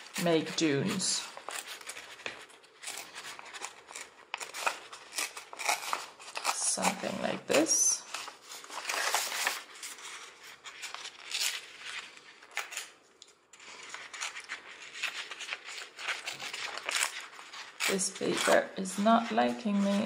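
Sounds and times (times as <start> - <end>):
paper being torn by hand: 2.8 - 9.9, 13.7 - 19.0.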